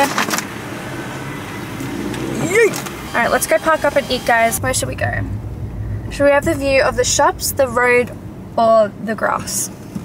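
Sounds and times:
car engine idling: 2.6s - 10.0s.

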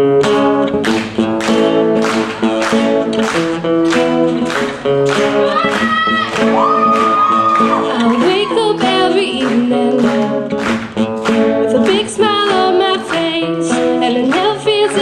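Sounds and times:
acoustic guitar strumming: 0.0s - 15.0s
person singing: 5.3s - 10.6s, 11.4s - 15.0s.

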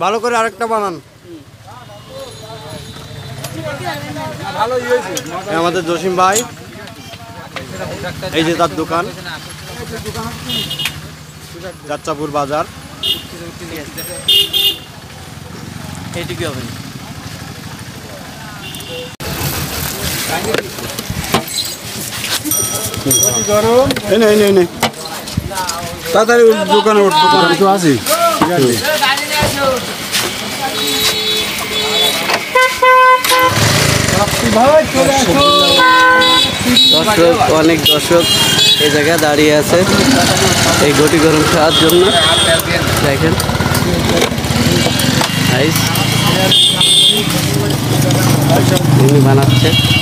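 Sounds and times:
vehicle engine running: 7.6s - 24.7s, 28.9s - 50.0s
motorcycle horn beeping: 10.3s - 11.2s, 13.0s - 15.1s, 18.6s - 19.2s, 30.3s - 39.4s, 40.6s - 47.5s, 49.3s - 50.0s
high-pitched horn beep: 30.4s - 33.9s, 35.0s - 39.2s, 40.7s - 42.8s.

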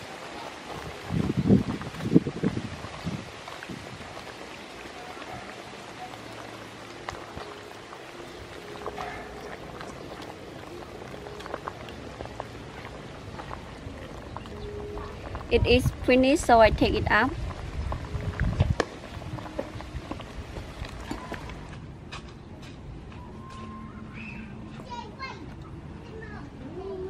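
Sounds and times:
splashes in boiling pot: 0.0s - 14.4s
soup boiling and bubbling: 0.0s - 22.0s
ladle stirring soup: 3.5s - 15.5s, 17.6s - 21.8s.

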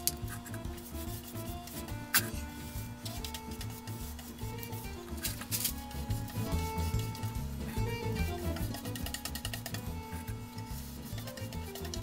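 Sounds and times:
background music with steady beat: 0.0s - 12.0s
stick stirring paint: 0.0s - 12.0s.

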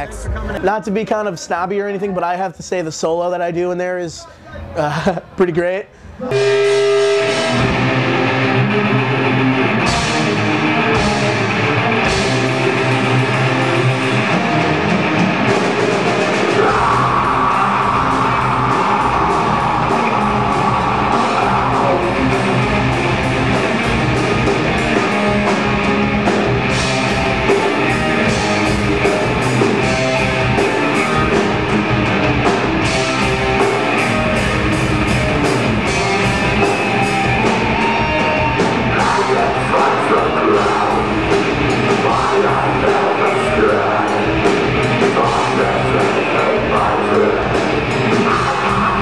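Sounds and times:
distorted electric guitars: 6.1s - 49.0s
drum kit: 6.3s - 49.0s.

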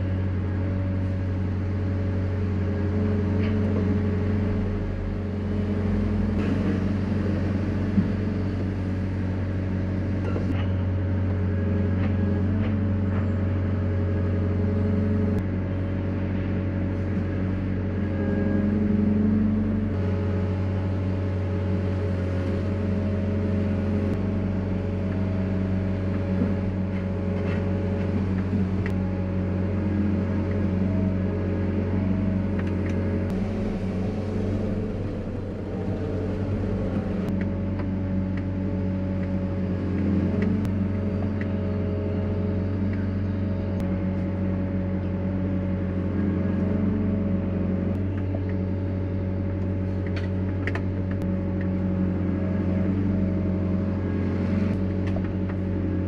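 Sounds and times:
excavator diesel engine running: 0.0s - 56.0s
hydraulics whining: 16.3s - 47.3s.

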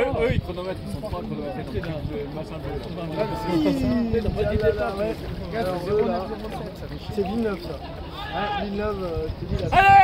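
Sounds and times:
people talking indistinctly: 0.0s - 10.0s
wind rumble on microphone: 0.0s - 10.0s.

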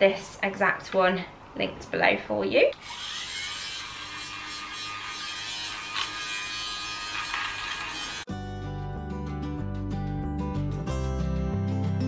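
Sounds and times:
lint remover motor buzzing: 2.8s - 8.3s
background music: 8.3s - 12.0s.

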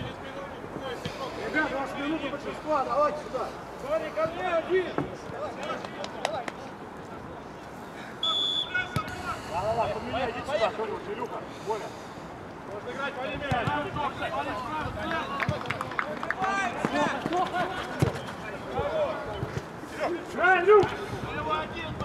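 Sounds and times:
players calling out: 8.0s - 11.8s
referee's whistle blast: 8.2s - 9.1s.

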